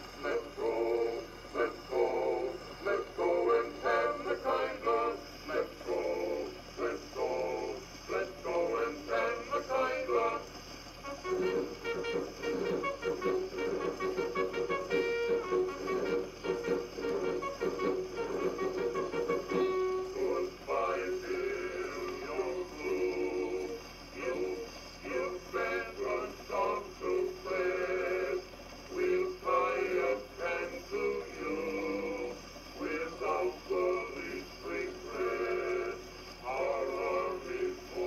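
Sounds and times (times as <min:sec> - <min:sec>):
old phonograph record playing: 0:00.0 - 0:38.0
man singing with male chorus: 0:00.2 - 0:10.5, 0:11.2 - 0:38.0.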